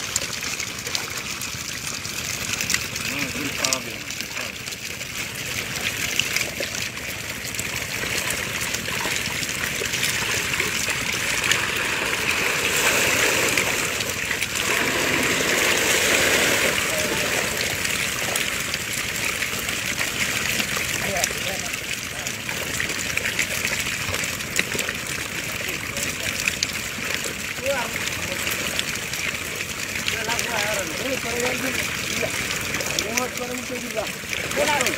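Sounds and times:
water splashing and sloshing: 0.0s - 34.9s.

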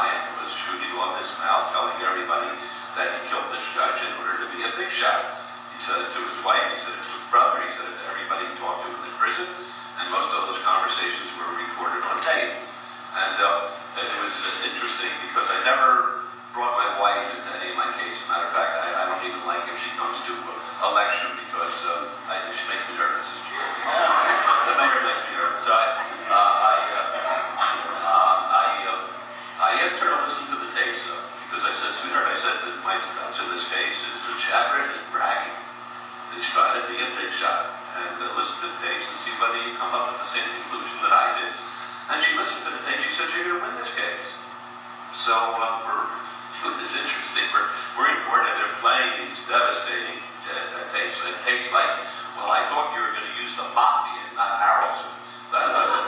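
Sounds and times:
man telling a story: 0.0s - 23.4s, 24.4s - 35.7s, 36.3s - 44.5s, 45.1s - 56.0s
man talking: 0.0s - 44.5s, 45.1s - 56.0s.

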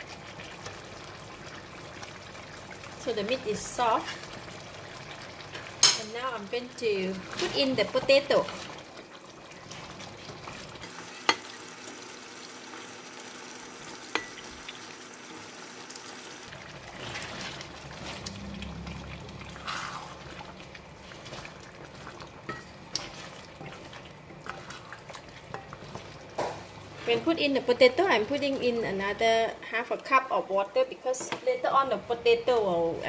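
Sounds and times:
curry simmering in a pan: 0.0s - 29.3s
wooden spoon stirring: 7.0s - 11.4s, 16.5s - 29.0s.

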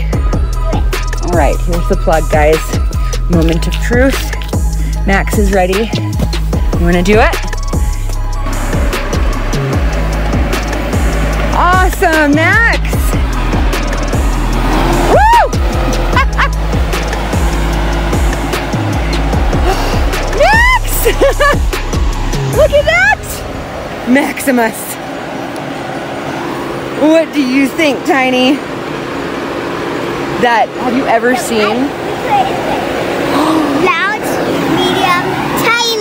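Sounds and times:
background music with deep bass: 0.0s - 27.6s
blower fans rushing air: 0.0s - 36.0s
faint motor hum: 0.0s - 36.0s.

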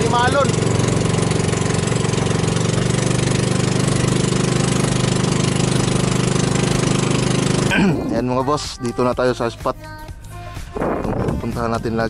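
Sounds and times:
small boat engine running: 0.0s - 9.0s.

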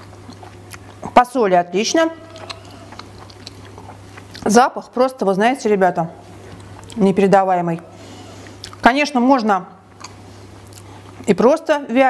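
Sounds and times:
person chewing: 0.0s - 1.2s, 2.2s - 4.5s, 6.4s - 7.0s, 8.1s - 8.8s, 9.9s - 11.3s
steady low hum: 0.0s - 12.0s
person speaking: 6.8s - 8.0s.

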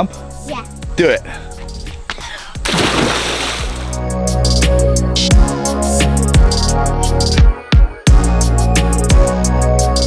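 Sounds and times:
background music: 0.0s - 10.0s
splash into swimming pool: 2.7s - 4.0s.

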